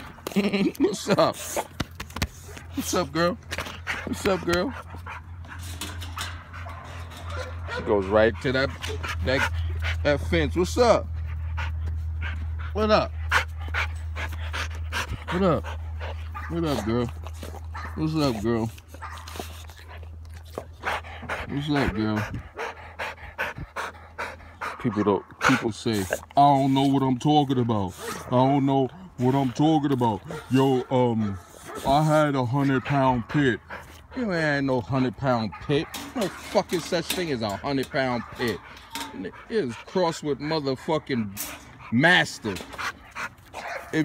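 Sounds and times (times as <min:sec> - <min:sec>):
dog panting: 0:00.0 - 0:44.0.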